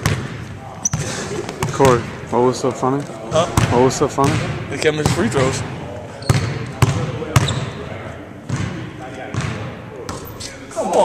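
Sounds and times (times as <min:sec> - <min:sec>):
basketball bouncing on hardwood floor: 0:00.0 - 0:02.1, 0:03.5 - 0:05.3, 0:08.5 - 0:10.2.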